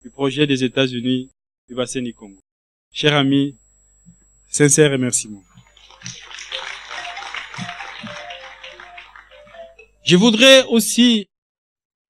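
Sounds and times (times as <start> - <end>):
audience applauding: 5.6 - 9.8
music playing: 5.6 - 10.2.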